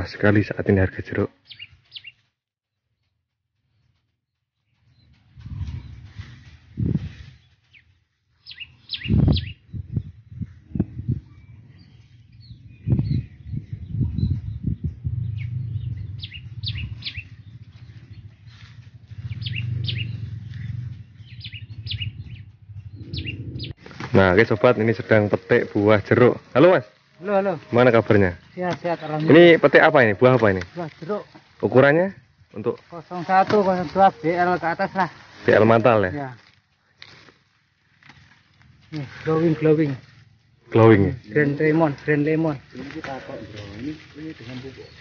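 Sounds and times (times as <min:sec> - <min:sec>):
small birds chirping: 0:01.3 - 0:45.0
low rumble: 0:09.3 - 0:28.6.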